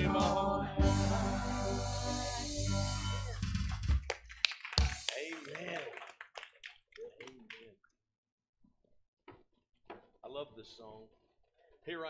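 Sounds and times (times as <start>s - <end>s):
scattered hand claps: 3.6s - 7.8s.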